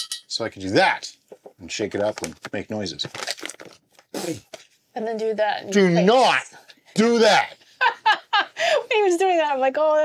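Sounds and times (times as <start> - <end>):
plastic pouch crinkling: 2.0 - 4.7.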